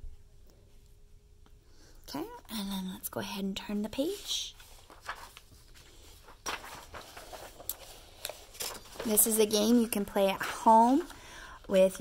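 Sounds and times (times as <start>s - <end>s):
paper pages rustling: 4.0s - 12.0s.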